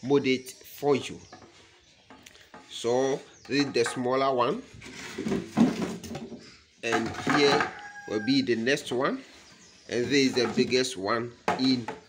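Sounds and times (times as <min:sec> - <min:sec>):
wood scraping on tile: 0:02.5 - 0:08.1, 0:08.8 - 0:12.0.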